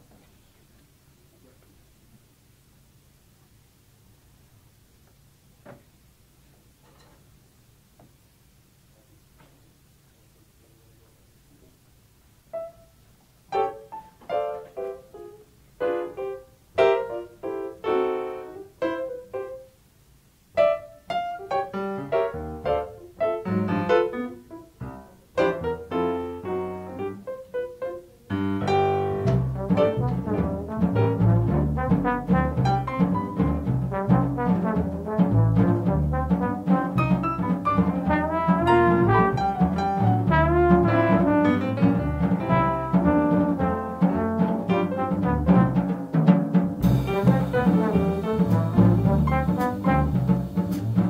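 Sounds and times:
jazz piano: 0:08.8 - 0:51.0
drums: 0:11.2 - 0:51.0
trombone: 0:13.5 - 0:19.6, 0:20.6 - 0:51.0
upright bass: 0:28.3 - 0:51.0.

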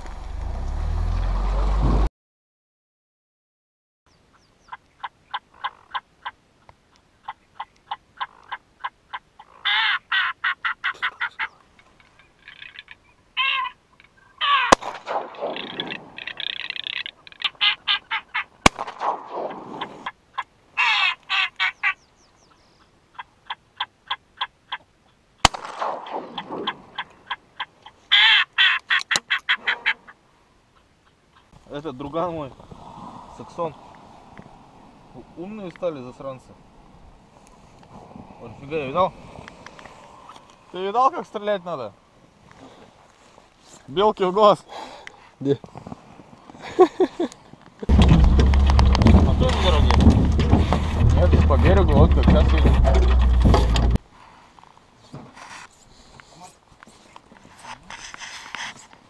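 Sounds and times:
sharp cracks: 0:14.6 - 0:17.6, 0:18.6 - 0:20.1, 0:25.4 - 0:27.2, 0:47.9 - 0:54.0
duck quacking: 0:26.9 - 0:30.2.

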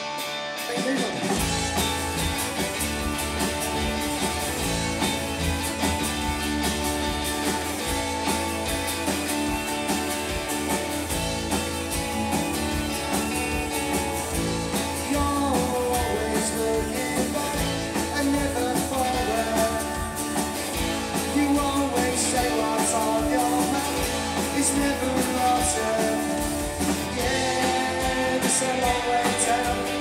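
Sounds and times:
indie rock band playing: 0:00.0 - 0:30.0
lead vocalist singing: 0:14.8 - 0:20.4, 0:21.1 - 0:30.0.

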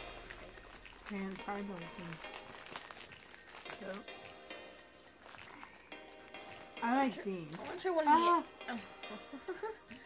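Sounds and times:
plastic wrapper crinkling: 0:00.0 - 0:04.4, 0:05.0 - 0:08.2
faint music: 0:00.0 - 0:10.0.

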